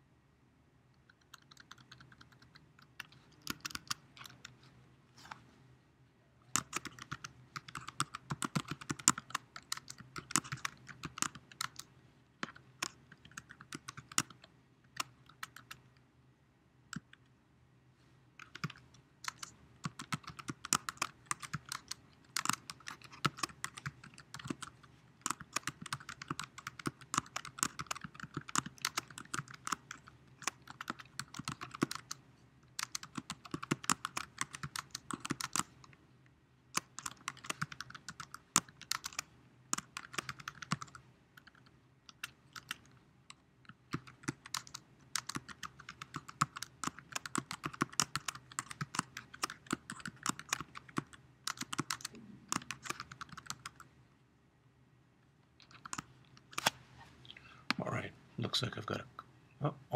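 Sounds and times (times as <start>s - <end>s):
typing on computer keyboard: 1.1s - 4.6s, 6.5s - 15.8s, 18.4s - 32.2s, 32.8s - 35.8s, 36.7s - 53.9s, 55.6s - 56.7s.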